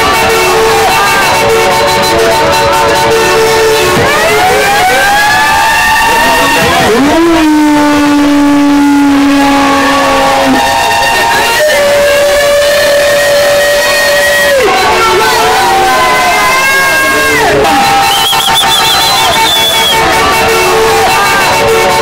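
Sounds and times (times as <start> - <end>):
crowd making long held calls: 0.0 - 22.0.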